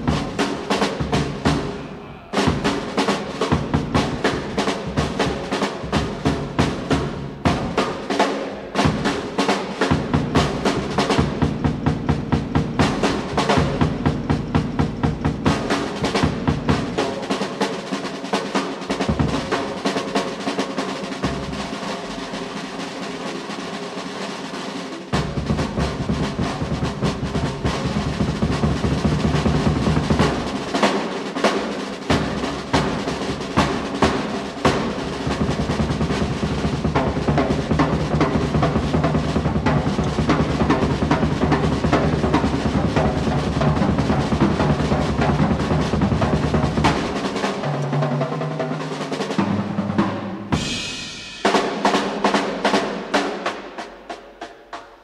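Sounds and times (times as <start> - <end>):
jazz drum solo: 0.0 - 55.0.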